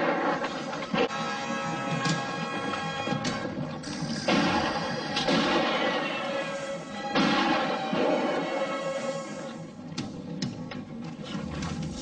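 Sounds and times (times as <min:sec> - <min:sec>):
background music score: 0:00.0 - 0:12.0.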